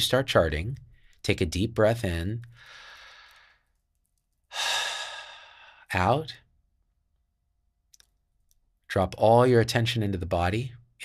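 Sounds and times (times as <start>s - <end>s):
man exhaling deeply: 4.5s - 5.9s.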